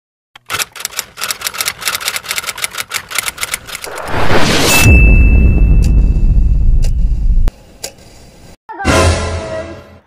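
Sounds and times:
typing clicks: 0:00.4 - 0:03.8.

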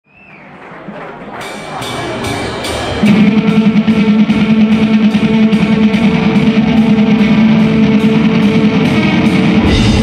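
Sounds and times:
live rock band music: 0:01.2 - 0:10.0.

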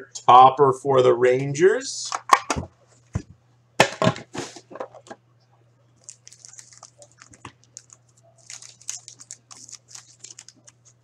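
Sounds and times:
card pack wrapper tearing: 0:06.0 - 0:11.0
cards rustling: 0:06.0 - 0:11.0.

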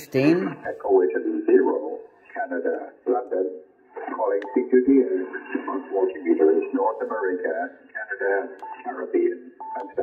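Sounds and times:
man's voice over radio speaker: 0:00.1 - 0:10.0.

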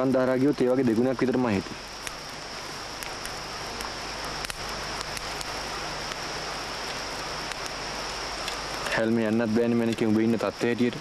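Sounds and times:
steady hiss: 0:00.0 - 0:11.0
faint clicks and crackles: 0:00.1 - 0:11.0.

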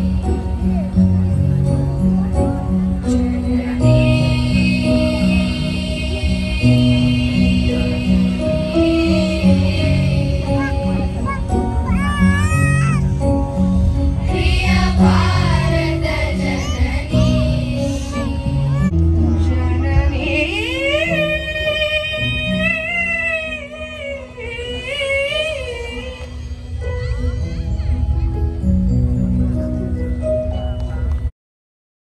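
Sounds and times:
low steady accompaniment: 0:00.0 - 0:31.3
children's choir singing: 0:03.2 - 0:11.3, 0:14.2 - 0:18.9.

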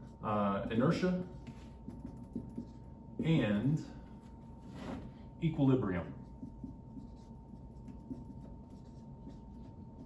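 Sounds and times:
marker writing on whiteboard: 0:00.0 - 0:04.4, 0:06.0 - 0:10.0.

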